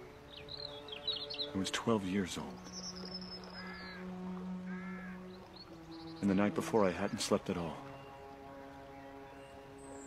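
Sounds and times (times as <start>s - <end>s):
crow cawing: 3.2s - 6.2s.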